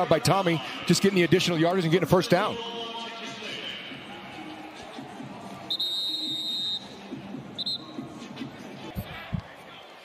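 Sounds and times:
stadium crowd noise: 0.0s - 10.0s
referee whistle blasts: 5.7s - 7.0s, 7.6s - 8.0s.

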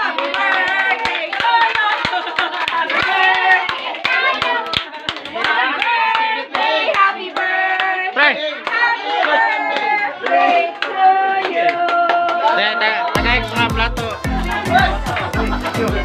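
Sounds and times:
people clapping in a beat: 0.0s - 16.0s
voices singing along: 0.0s - 16.0s.

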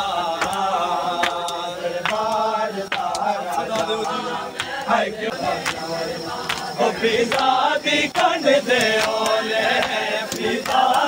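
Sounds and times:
men chanting: 0.0s - 11.0s
hands slapping chests: 0.4s - 4.9s, 5.6s - 5.8s, 6.4s - 6.7s, 7.3s - 7.5s, 8.1s - 11.0s.

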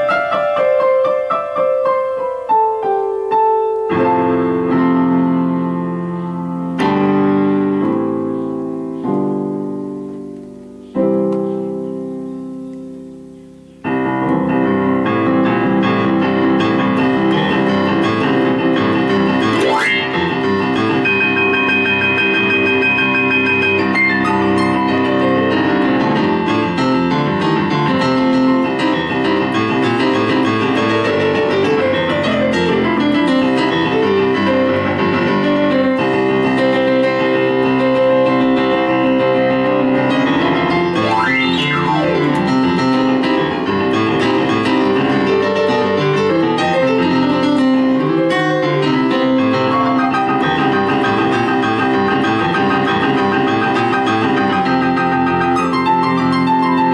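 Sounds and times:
digital piano playing: 0.0s - 56.9s.

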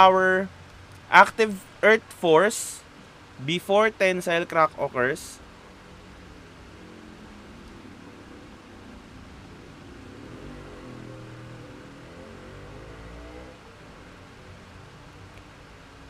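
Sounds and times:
faint steady background hum: 0.0s - 16.0s
low motor drone: 5.3s - 16.0s.

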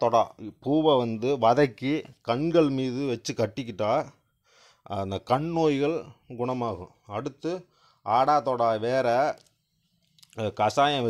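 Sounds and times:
person breathing: 4.3s - 4.9s, 7.6s - 8.1s.

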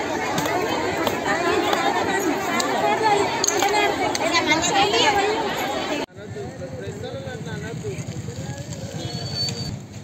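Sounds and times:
distant people talking: 0.0s - 9.7s.

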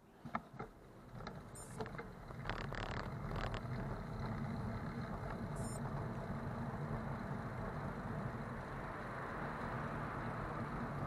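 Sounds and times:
bicycle tyre noise: 1.1s - 11.0s.

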